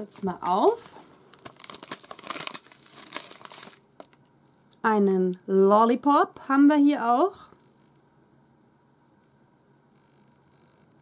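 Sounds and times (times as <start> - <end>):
plastic wrapper crinkling: 0.0 - 4.3.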